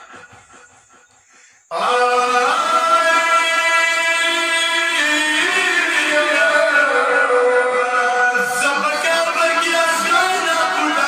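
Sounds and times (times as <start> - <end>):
men singing in unison: 1.7 - 11.0.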